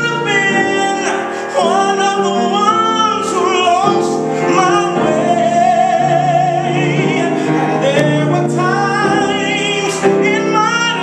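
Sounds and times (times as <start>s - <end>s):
grand piano: 0.0s - 11.0s
person singing gospel with vibrato: 0.0s - 11.0s.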